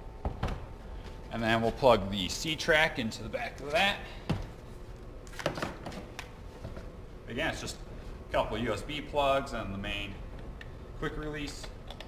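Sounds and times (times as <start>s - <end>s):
low steady hum: 0.0s - 12.0s
cables being handled: 3.3s - 7.0s.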